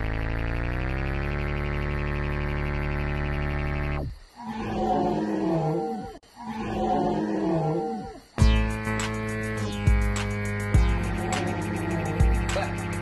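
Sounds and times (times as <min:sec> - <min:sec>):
buzzy synthesizer tone: 0:00.0 - 0:05.7, 0:08.4 - 0:13.0
roaring sound effect: 0:04.0 - 0:08.3, 0:10.9 - 0:13.0.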